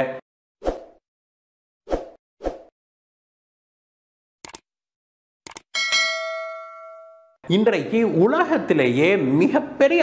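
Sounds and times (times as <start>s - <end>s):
ringing bell chime: 5.8s - 7.4s.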